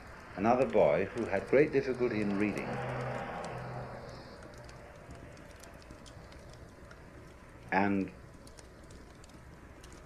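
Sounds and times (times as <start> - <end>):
low hum: 0.0 - 10.0
tape hiss: 0.0 - 10.0
light clicks: 0.1 - 10.0.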